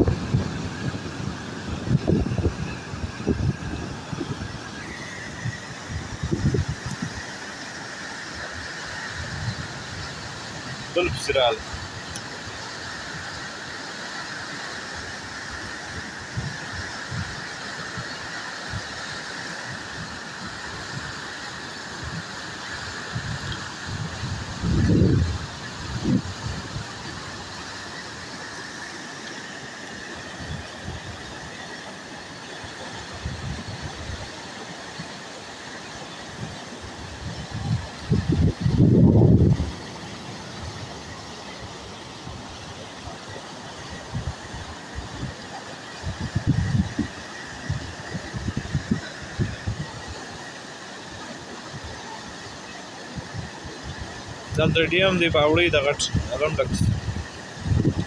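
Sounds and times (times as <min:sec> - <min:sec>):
wind buffeting microphone: 0:00.0 - 0:07.3, 0:23.1 - 0:27.1, 0:36.4 - 0:40.9, 0:44.0 - 0:50.0, 0:53.2 - 0:58.0
floodwater rushing: 0:00.0 - 0:58.0.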